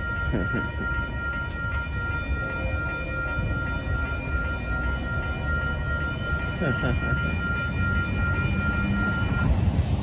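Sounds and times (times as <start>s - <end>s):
high ringing tone: 0.0s - 9.8s
freight train rumbling past: 0.0s - 10.0s.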